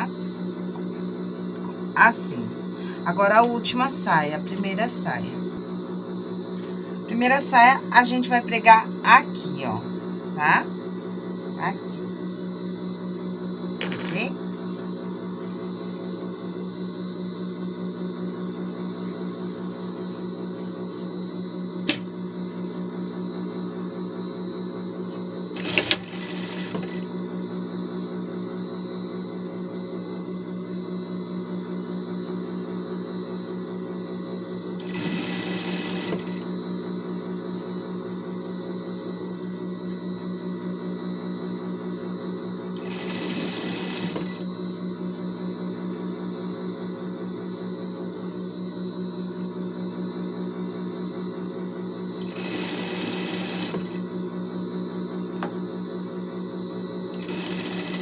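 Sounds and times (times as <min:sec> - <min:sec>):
sewing machine running: 0:25.5 - 0:27.1, 0:34.8 - 0:36.5, 0:42.7 - 0:44.5, 0:52.2 - 0:54.0, 0:57.1 - 0:58.0.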